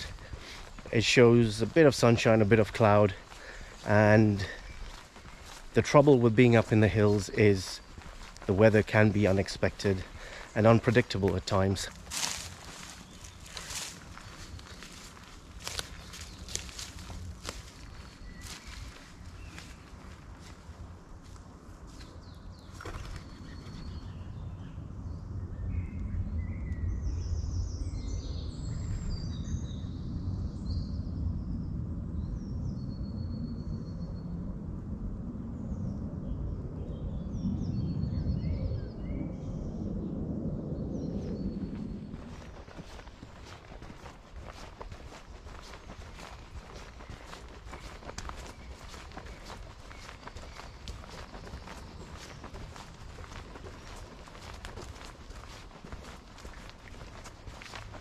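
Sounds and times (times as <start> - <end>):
footsteps crunching dry leaves: 0.0 - 23.8, 41.7 - 58.0
birds singing: 0.0 - 31.6, 32.2 - 34.4, 35.6 - 58.0.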